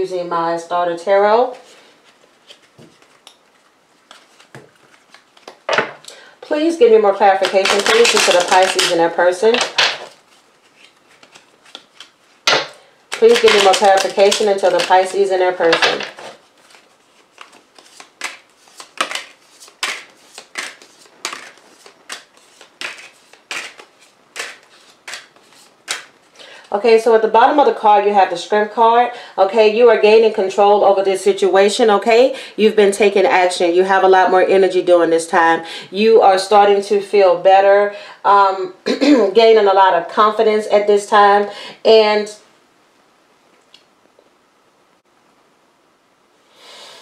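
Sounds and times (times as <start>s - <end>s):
cards clicking and rustling: 2.2s - 5.7s, 7.3s - 26.2s.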